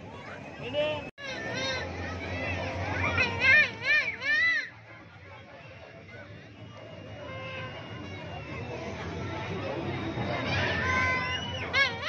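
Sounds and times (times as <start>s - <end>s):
crowd din: 0.0s - 12.0s
children shouting in sing-song voices: 1.2s - 4.9s, 7.0s - 12.0s.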